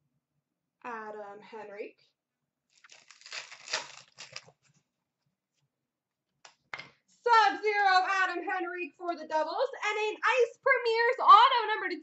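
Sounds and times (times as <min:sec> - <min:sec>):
plastic wrapper crinkling and tearing: 0:02.7 - 0:04.7.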